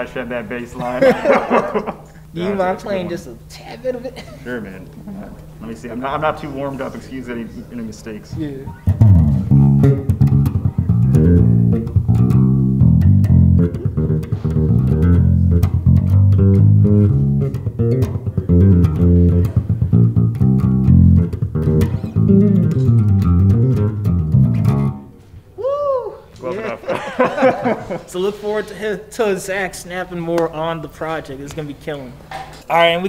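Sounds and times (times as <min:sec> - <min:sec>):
electric bass line: 0:08.6 - 0:25.2.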